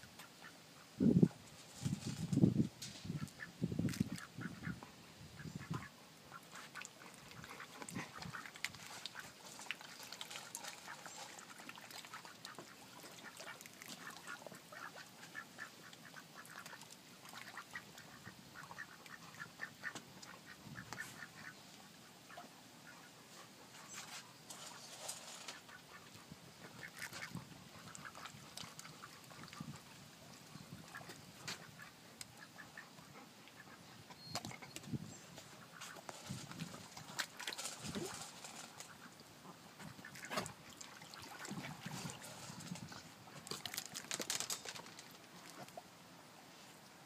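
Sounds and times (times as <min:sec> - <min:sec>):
ducks quacking softly: 0:03.0 - 0:10.0, 0:10.7 - 0:24.8, 0:25.4 - 0:34.7, 0:35.3 - 0:36.1, 0:37.0 - 0:42.2.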